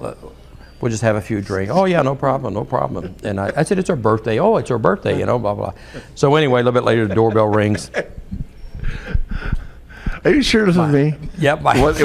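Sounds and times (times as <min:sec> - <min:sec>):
faint breaths: 0:05.7 - 0:06.2, 0:08.5 - 0:10.5
muffled laughter: 0:07.0 - 0:09.2
low thumps: 0:08.1 - 0:10.6.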